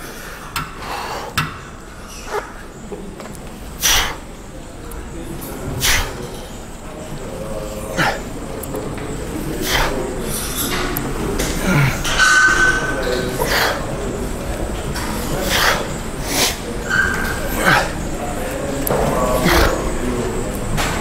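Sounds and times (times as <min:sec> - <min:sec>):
gym background noise: 0:00.0 - 0:21.0
man breathing out hard: 0:05.8 - 0:06.2
man grunting with effort: 0:11.6 - 0:12.1, 0:19.3 - 0:19.9.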